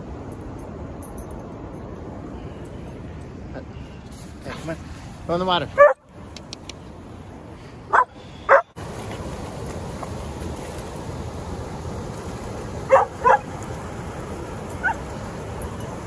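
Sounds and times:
dog barking: 0:05.8 - 0:06.0, 0:07.9 - 0:08.7, 0:12.9 - 0:13.5, 0:14.8 - 0:15.0
river water running over rocks: 0:07.3 - 0:16.0.

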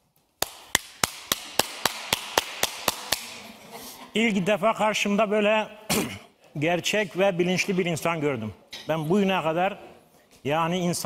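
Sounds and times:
hands clapping: 0:00.4 - 0:03.5.

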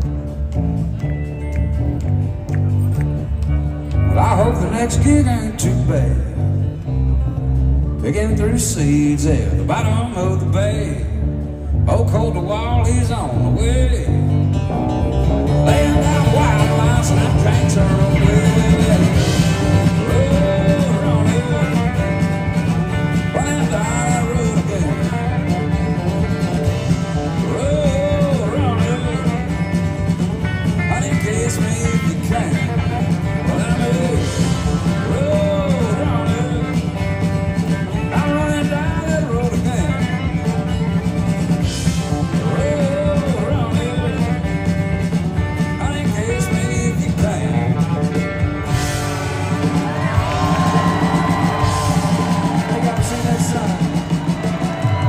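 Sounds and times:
country band playing: 0:00.0 - 0:55.0
lead guitar bending notes: 0:00.0 - 0:55.0.

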